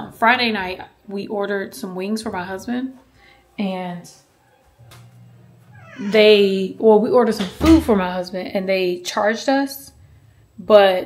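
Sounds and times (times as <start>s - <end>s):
cat meowing faintly: 5.0s - 6.6s.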